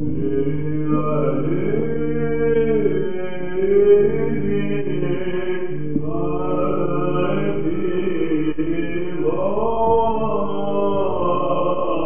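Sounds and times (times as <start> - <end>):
low held vocal drone: 0.0 - 12.0
men chanting melismatic melody: 0.0 - 12.0.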